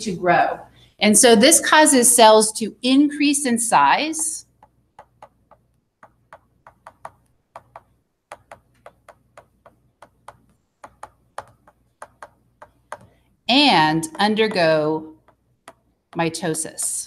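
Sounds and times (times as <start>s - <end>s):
stylus tapping on tablet screen: 4.0s - 13.4s, 14.0s - 16.3s.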